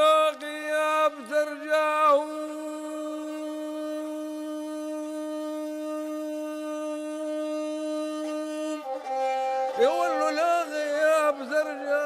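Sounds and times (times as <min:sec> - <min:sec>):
bowed fiddle long note: 0:00.0 - 0:12.0.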